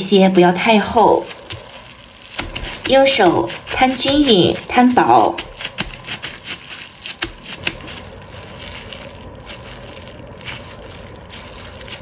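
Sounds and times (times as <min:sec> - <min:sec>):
gloved hand patting raw meat: 0:00.0 - 0:12.0
soft rubbing: 0:00.0 - 0:12.0.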